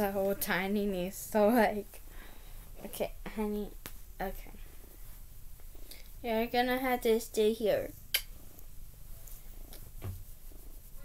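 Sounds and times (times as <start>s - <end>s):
soft handling bump: 9.8s - 10.4s.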